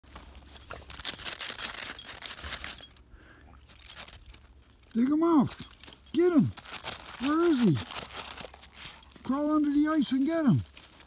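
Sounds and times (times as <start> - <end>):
dog digging in crusty snow: 0.1 - 2.9, 6.3 - 9.3.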